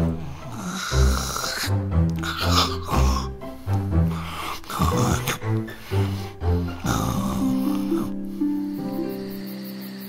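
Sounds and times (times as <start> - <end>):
soft background music: 0.0 - 10.0
cartoon snore: 0.4 - 3.4, 4.4 - 8.2.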